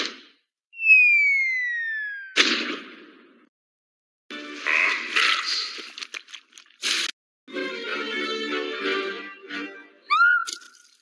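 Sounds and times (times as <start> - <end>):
cartoon falling whistle: 0.8 - 2.4, 10.1 - 10.6.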